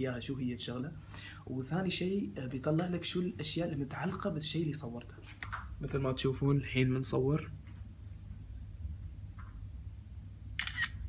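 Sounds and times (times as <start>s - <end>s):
camera shutter double click: 10.6s - 11.0s.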